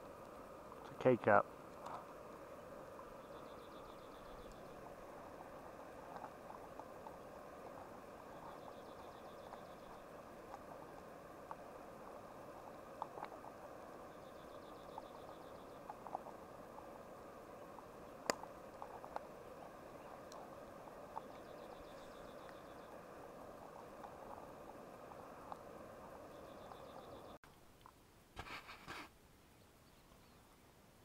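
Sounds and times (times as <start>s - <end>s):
gas stove burner hiss: 0.0s - 27.3s.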